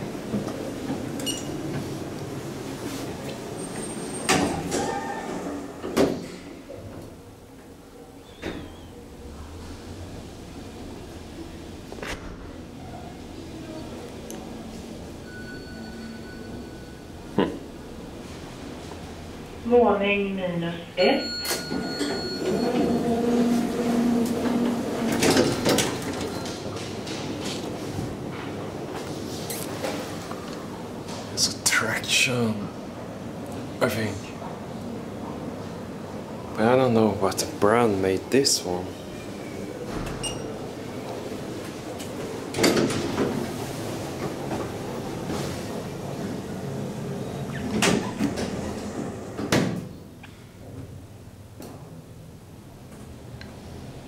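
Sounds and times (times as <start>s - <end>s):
elevator doors sliding open: 0.0s - 19.6s, 21.0s - 31.5s, 37.5s - 51.1s.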